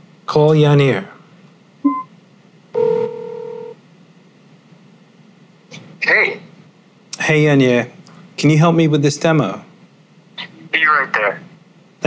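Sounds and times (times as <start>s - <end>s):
short electronic beep: 1.9s - 2.1s
steady ringing tone: 2.8s - 3.8s.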